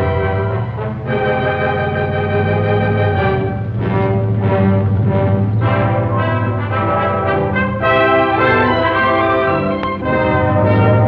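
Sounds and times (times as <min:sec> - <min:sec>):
orchestral music led by brass: 0:00.0 - 0:11.0.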